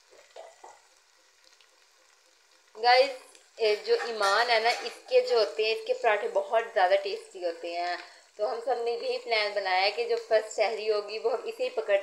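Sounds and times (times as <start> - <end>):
onions sizzling in oil: 0.0 - 12.0
small crackles: 0.0 - 12.0.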